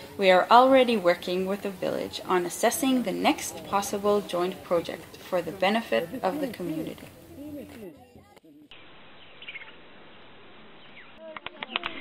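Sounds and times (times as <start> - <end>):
outdoor background hiss: 0.0 - 11.4.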